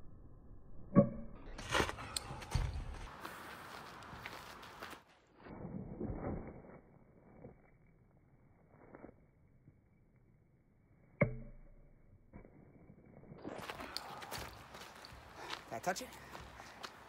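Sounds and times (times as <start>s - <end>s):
footsteps scuffing on gravel: 2.8s - 5.1s.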